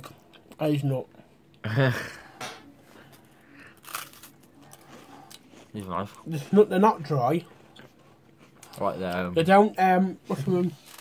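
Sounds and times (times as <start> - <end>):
person laughing: 1.6 - 2.3
crisp wafer bar crunch: 3.6 - 6.2, 10.5 - 11.0.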